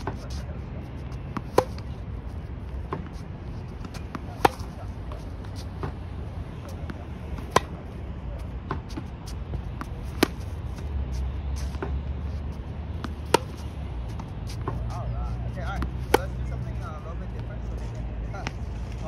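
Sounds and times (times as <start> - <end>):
low outdoor rumble: 0.0 - 19.0
tennis racket hitting ball: 1.2 - 1.9, 2.8 - 7.8, 9.8 - 10.8, 12.9 - 15.0, 15.7 - 16.4.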